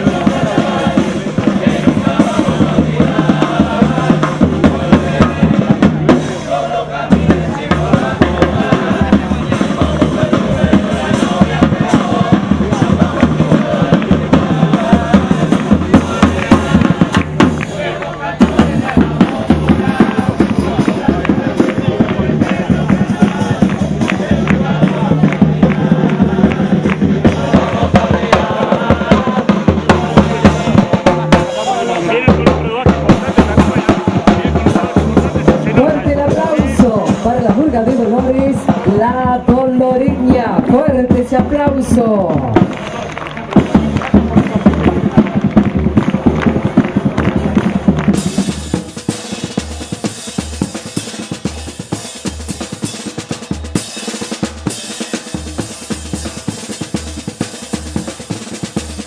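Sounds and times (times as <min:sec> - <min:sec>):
bass drum: 0:00.0 - 0:59.0
chorus singing: 0:00.0 - 0:59.0
snare drum: 0:00.0 - 0:59.0.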